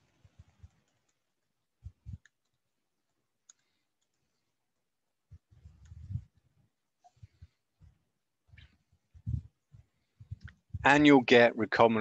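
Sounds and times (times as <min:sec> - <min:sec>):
faint low thumps and knocks: 0:07.2 - 0:11.0
man speaking: 0:10.8 - 0:12.0.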